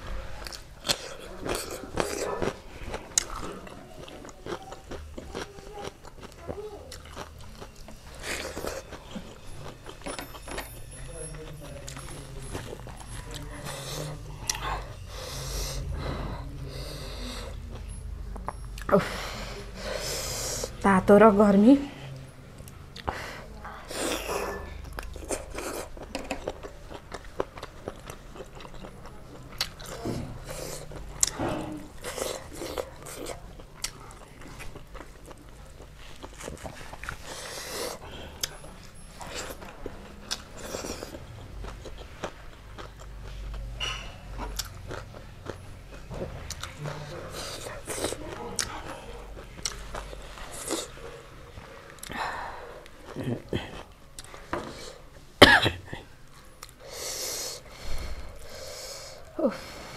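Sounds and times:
wet chewing and mouth smacks: 24.8s - 43.6s.

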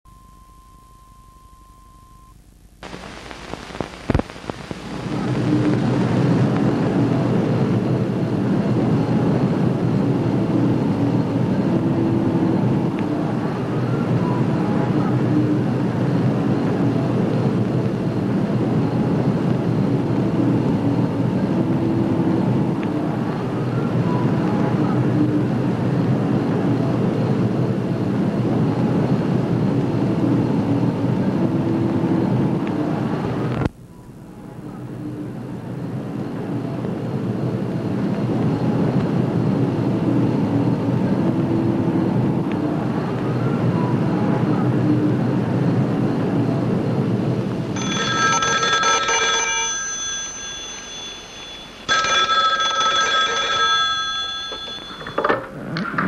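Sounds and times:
city traffic noise: 5.1s - 56.0s
telephone bell ringing: 47.8s - 55.6s.

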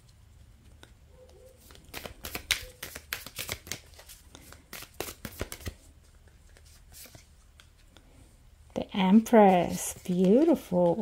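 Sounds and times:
cards being shuffled: 1.4s - 8.0s, 9.2s - 11.0s.

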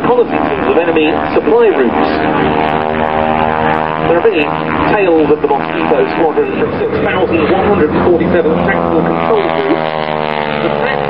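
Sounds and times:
propeller plane flying overhead: 0.0s - 11.0s.

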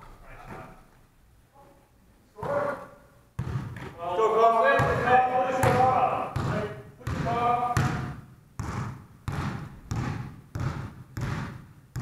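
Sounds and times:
basketball bouncing on wooden floor: 3.4s - 4.0s, 4.8s - 12.0s.

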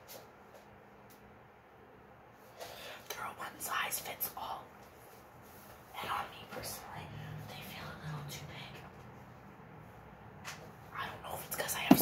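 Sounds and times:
woman speaking indistinctly: 5.9s - 8.9s, 10.9s - 12.0s.

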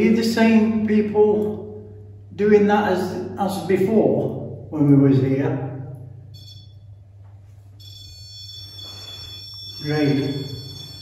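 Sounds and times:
high-pitched electronic alarm tone: 6.3s - 7.0s, 7.8s - 11.0s.

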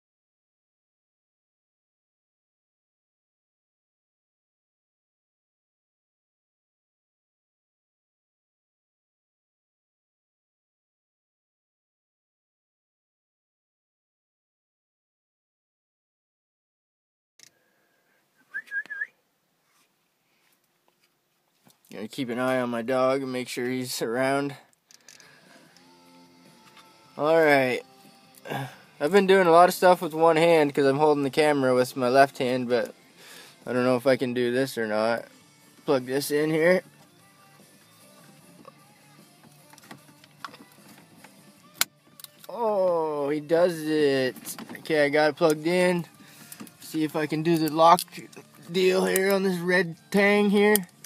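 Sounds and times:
person whistling warbling call: 18.4s - 19.2s
faint music: 21.7s - 51.0s.

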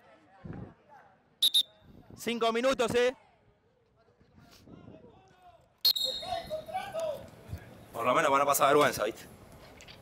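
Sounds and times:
players' voices: 0.0s - 9.3s.

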